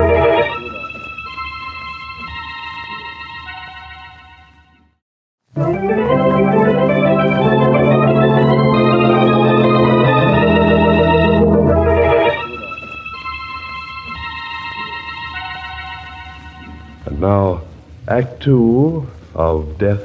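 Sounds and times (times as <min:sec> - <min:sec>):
dramatic organ music: 0:00.0 - 0:03.7, 0:05.6 - 0:17.4.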